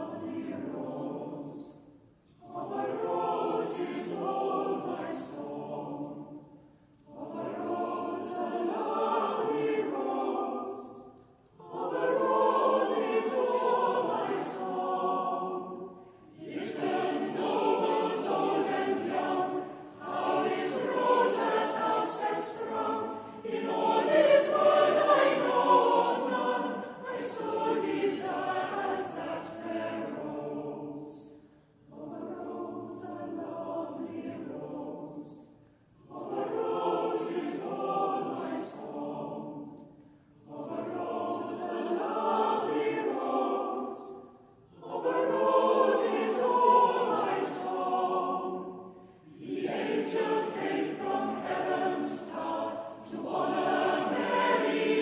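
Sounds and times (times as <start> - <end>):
choir singing unaccompanied: 0.0 - 55.0.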